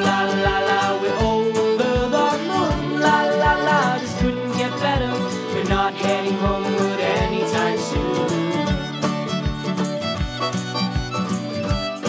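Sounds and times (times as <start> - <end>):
acoustic guitar: 0.0 - 12.0
banjo: 0.0 - 12.0
fiddle: 0.0 - 12.0
steady beat: 0.0 - 12.0.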